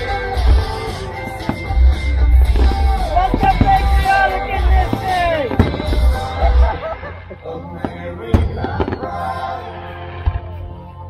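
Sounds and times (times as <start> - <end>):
firework bang: 2.4 - 4.1, 4.8 - 6.6, 7.8 - 9.3.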